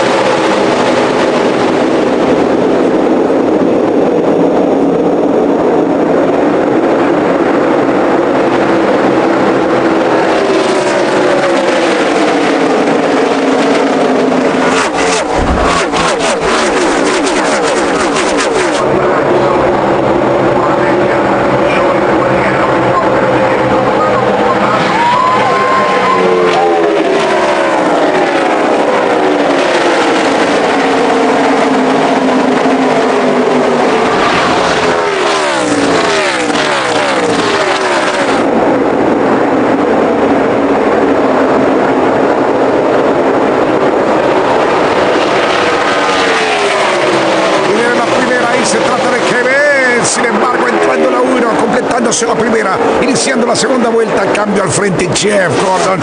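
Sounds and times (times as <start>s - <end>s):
race cars passing at speed: 0.0s - 56.0s.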